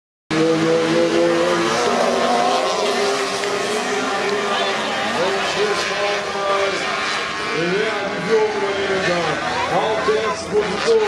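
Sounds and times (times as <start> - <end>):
racing buggy engines: 0.3 - 11.0.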